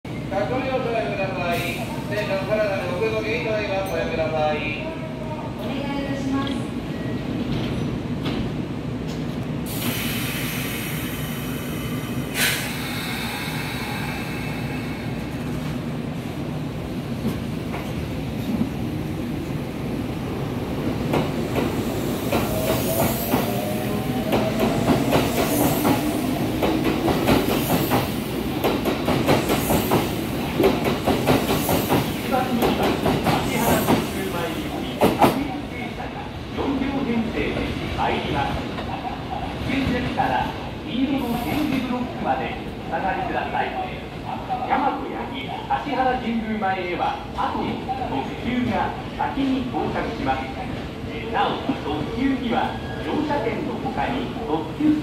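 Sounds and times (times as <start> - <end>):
train air hiss: 9.6 - 15.5, 29.3 - 30.4, 33.5 - 35.3.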